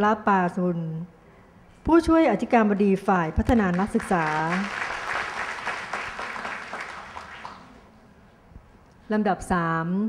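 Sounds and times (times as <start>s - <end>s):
audience applause: 3.7s - 7.8s.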